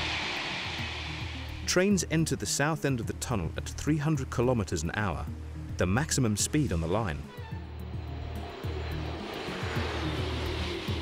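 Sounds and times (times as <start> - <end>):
high-speed train rushing: 0.0 - 2.2, 7.6 - 11.0
background music with bass: 0.0 - 11.0.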